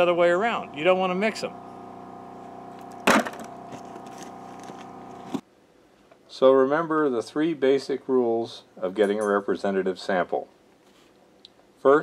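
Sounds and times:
steady hum: 0.0s - 5.4s
sharp knock: 3.0s - 3.5s.

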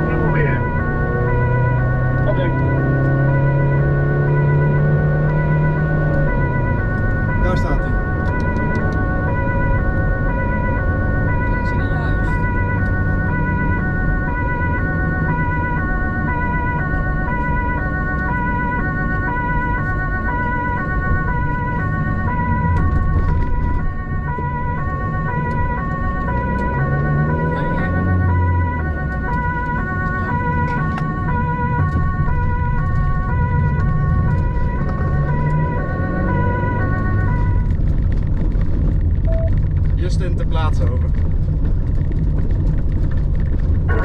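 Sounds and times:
two-tone siren: 0.0s - 40.9s
engine and road noise: 0.0s - 44.0s.

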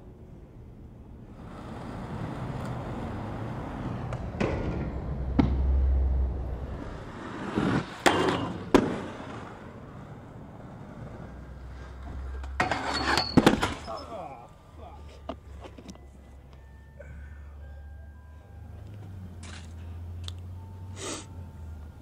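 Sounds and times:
skate wheels rolling on asphalt: 1.1s - 13.9s
skates clacking on ground: 7.1s - 14.1s.

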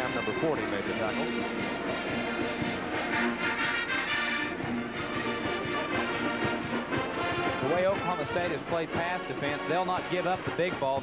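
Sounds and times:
marching band playing: 0.0s - 11.0s.

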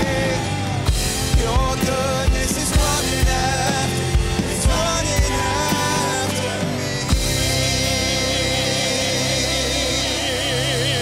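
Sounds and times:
keyboard guitar and drums: 0.0s - 11.0s
singer holding long vibrato note: 3.0s - 11.0s.

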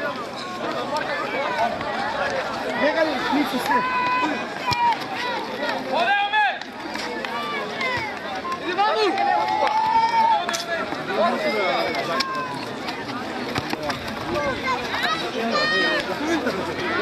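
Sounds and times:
people shouting and calling: 0.0s - 17.0s.

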